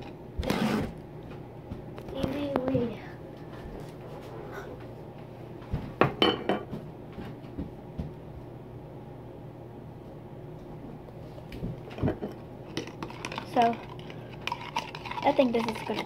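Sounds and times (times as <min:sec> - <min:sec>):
containers knocking and clinking: 0:11.9 - 0:16.0.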